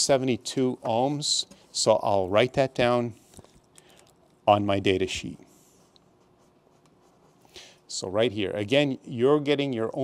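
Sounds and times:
pencil scratching on paper: 5.5s - 7.5s.

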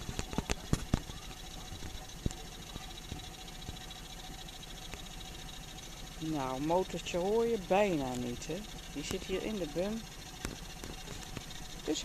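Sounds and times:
boat engine humming: 0.0s - 12.0s.

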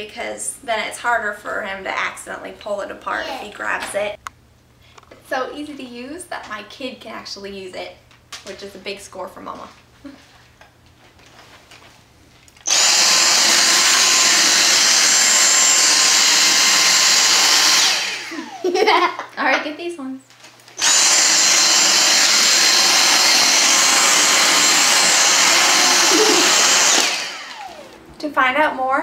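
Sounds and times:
vacuum cleaner whining: 12.6s - 19.0s, 20.8s - 28.2s.

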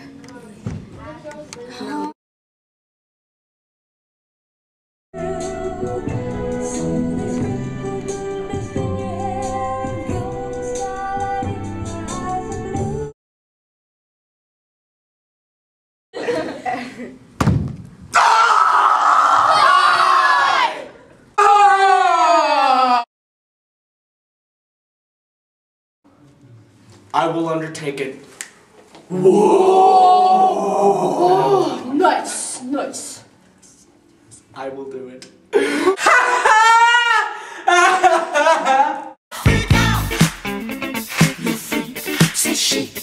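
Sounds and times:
person screaming: 18.2s - 20.6s, 21.4s - 23.1s, 29.1s - 31.9s
man sing-song vocalising: 39.3s - 40.3s, 41.0s - 43.0s.

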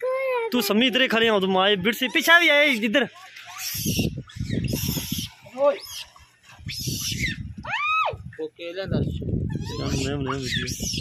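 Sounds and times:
monkey coo call: 3.4s - 7.9s, 9.5s - 11.0s.

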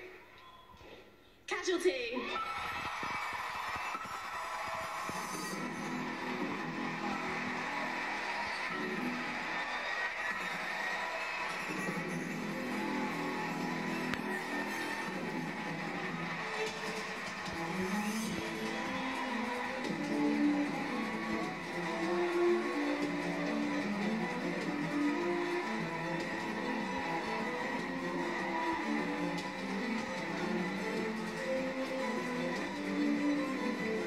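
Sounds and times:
play-on music through tv speaker: 0.0s - 34.0s
audience applauding: 2.3s - 34.0s.

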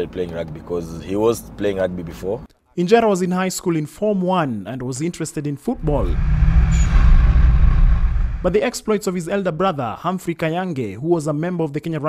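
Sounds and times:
car driving rumble: 5.8s - 8.8s.

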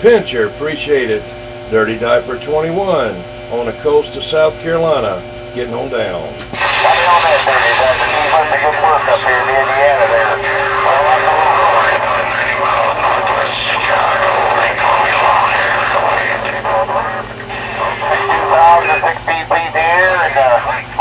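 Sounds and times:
steady low hum: 0.0s - 21.0s
distorted voice over radio speaker: 6.6s - 21.0s.

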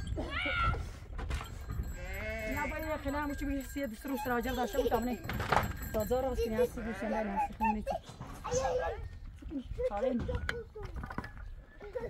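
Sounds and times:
young goats bleating: 6.5s - 7.9s.

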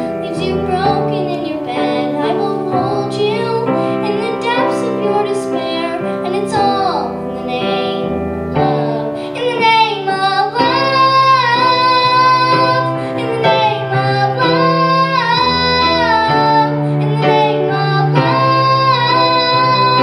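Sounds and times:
girl singing: 0.0s - 20.0s
grand piano chords: 0.0s - 20.0s.

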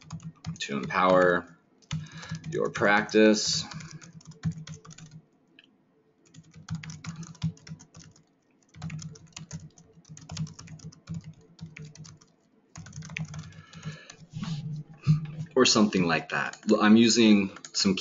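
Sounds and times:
typing on computer keyboard: 0.0s - 2.9s, 3.6s - 5.2s, 6.2s - 14.3s.

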